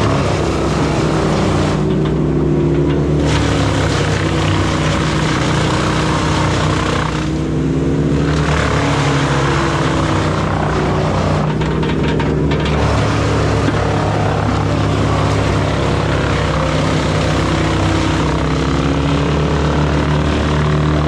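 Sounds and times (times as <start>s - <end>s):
wood chipper engine drone: 0.0s - 21.0s.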